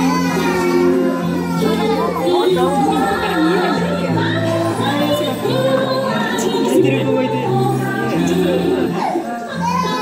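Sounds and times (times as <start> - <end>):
group singing: 0.0 - 10.0.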